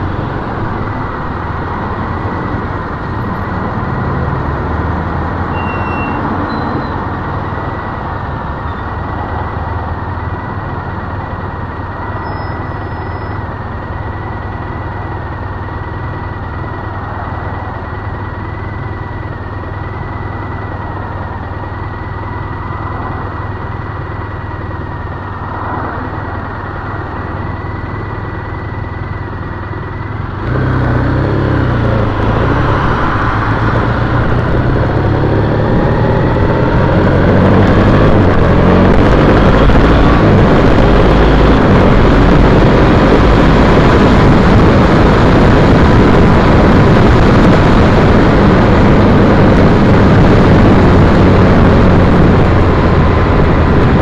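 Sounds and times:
motorcycle engine idling and revving: 0.0 - 54.0
wind noise on microphone: 30.2 - 54.0.

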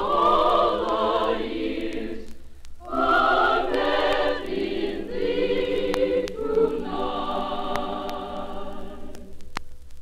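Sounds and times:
women's choir singing: 0.0 - 9.4.

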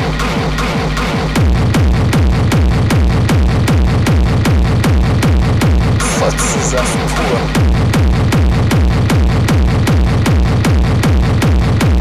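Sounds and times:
kick-drum beat: 0.1 - 12.0.

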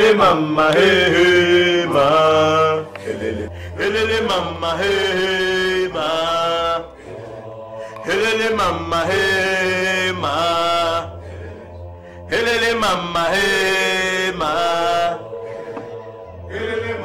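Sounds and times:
men chanting in long notes: 0.0 - 17.0
steady low drone: 0.0 - 17.0.

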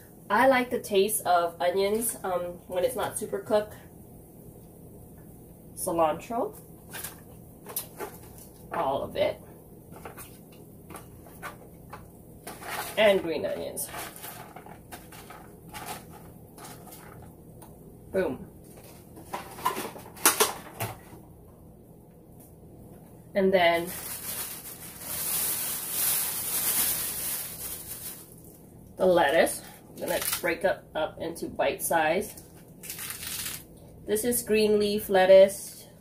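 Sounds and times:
plastic bag rustling: 6.8 - 9.0, 9.9 - 17.3, 18.6 - 21.2, 23.7 - 28.7, 29.3 - 30.5, 32.3 - 33.7
herbs rustling and ticking: 23.8 - 28.7, 29.3 - 30.5, 32.3 - 33.7.

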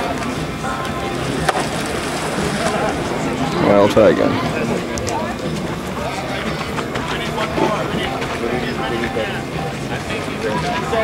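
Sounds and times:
outdoor background noise: 0.0 - 11.0
people talking indistinctly: 0.0 - 11.0.

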